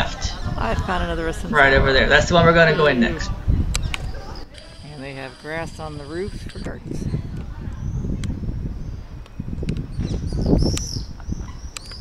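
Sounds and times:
low microphone rumble: 0:00.0 - 0:04.5, 0:05.3 - 0:12.0
high bird chirps: 0:08.8 - 0:12.0.

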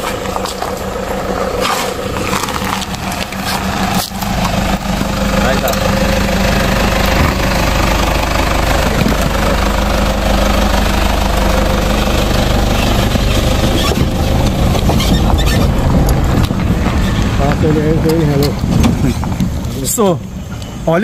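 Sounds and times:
pickup truck engine running: 0:00.0 - 0:20.8
truck crawling over rubble: 0:00.0 - 0:20.8.

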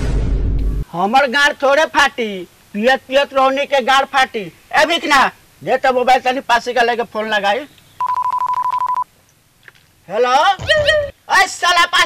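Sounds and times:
high fluttering phone beep: 0:08.0 - 0:09.1.

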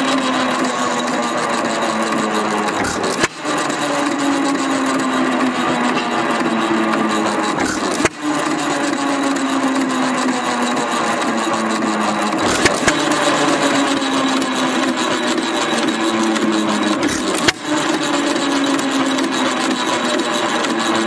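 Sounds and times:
hit-and-miss engine running: 0:00.0 - 0:21.0
sharp clicks: 0:02.0 - 0:04.6, 0:06.9 - 0:09.0, 0:12.2 - 0:14.5, 0:15.3 - 0:18.1.

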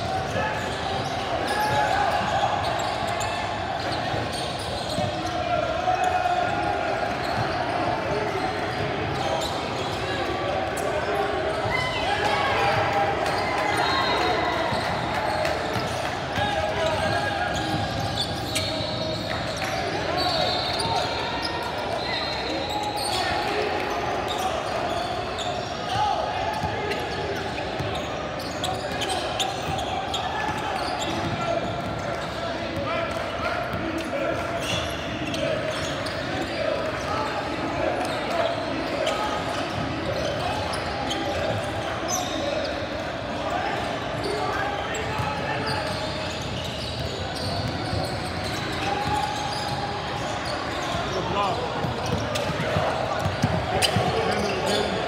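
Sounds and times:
shouts and chatter: 0:00.0 - 0:55.0.

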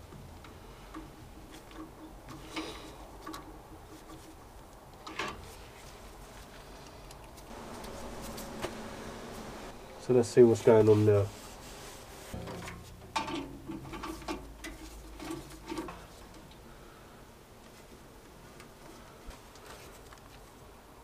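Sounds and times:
faint steady hum: 0:05.6 - 0:21.0.

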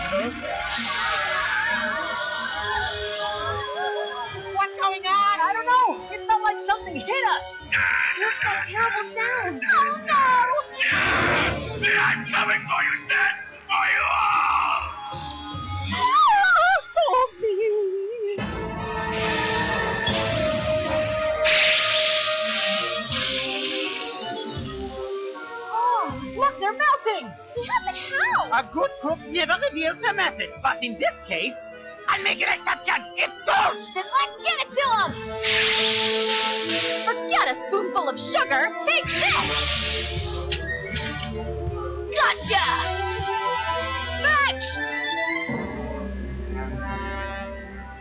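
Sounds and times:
background music with steady beat: 0:18.4 - 0:48.0
hissing sound effect: 0:21.4 - 0:24.4, 0:35.4 - 0:37.3, 0:39.3 - 0:40.6.

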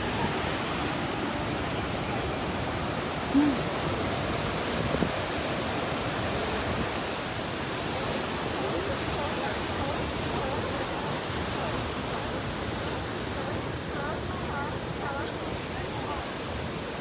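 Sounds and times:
ocean surf breaking on beach: 0:00.0 - 0:17.0.

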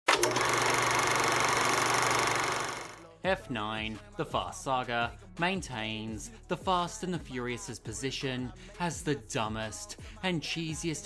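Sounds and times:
film projector clattering: 0:00.1 - 0:03.0.

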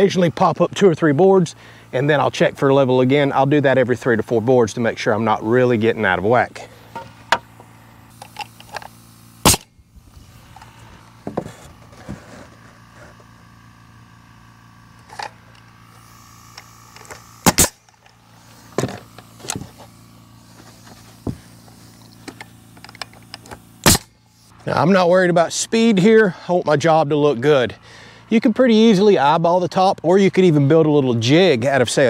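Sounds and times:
nail gun shots: 0:09.4 - 0:09.7, 0:17.4 - 0:17.9, 0:23.8 - 0:24.1.

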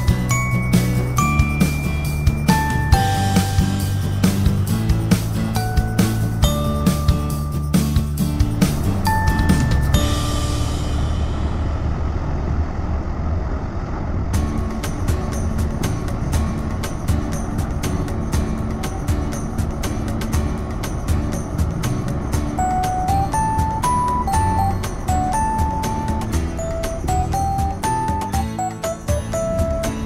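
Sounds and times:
stepping melody line: 0:00.0 - 0:11.0, 0:14.4 - 0:30.0
music with ticking beat: 0:00.0 - 0:11.2, 0:14.4 - 0:30.0
steady low rumble: 0:00.0 - 0:28.3.

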